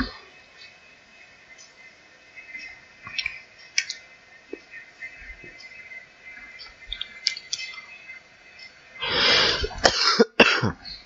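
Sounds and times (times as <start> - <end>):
man coughing: 9.6 - 10.8.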